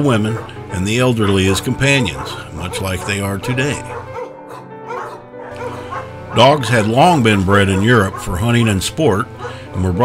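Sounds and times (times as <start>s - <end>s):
background music: 0.0s - 10.0s
dog barking: 0.2s - 0.5s, 1.2s - 6.6s, 7.6s - 8.4s, 9.4s - 9.6s.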